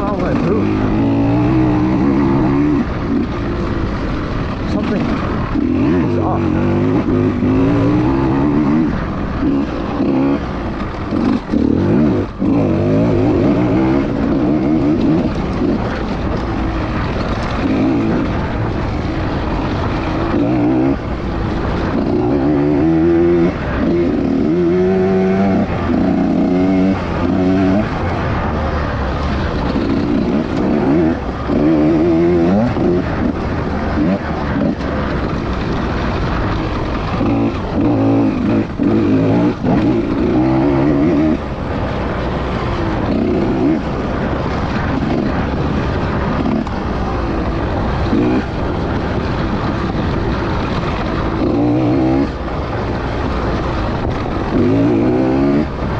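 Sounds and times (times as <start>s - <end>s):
motorcycle engine revving: 0.0s - 55.9s.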